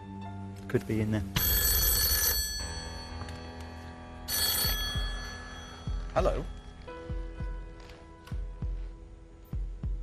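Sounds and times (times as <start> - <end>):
telephone ringing: 1.4 - 6.8.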